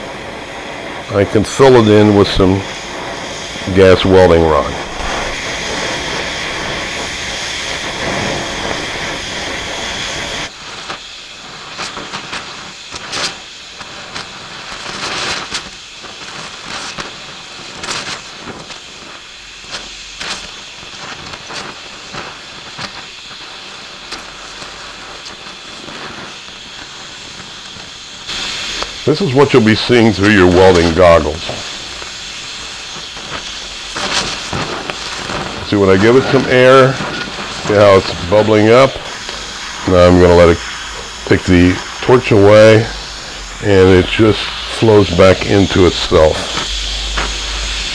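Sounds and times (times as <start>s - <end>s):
molten steel sizzling and popping: 0.0s - 47.9s
welding torch flame hissing: 0.0s - 47.9s.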